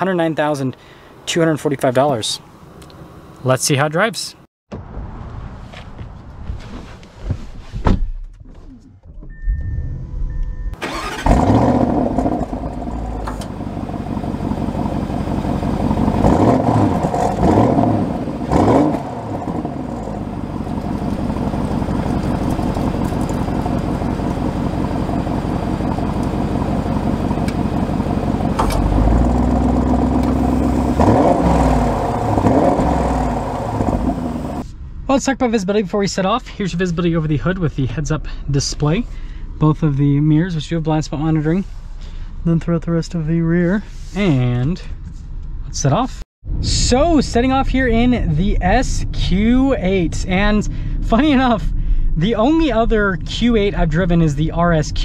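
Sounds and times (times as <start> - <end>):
car engine starting and idling: 8.6 - 35.3, 46.5 - 55.0
short beep: 9.2 - 10.8
car engine revving: 9.8 - 34.6.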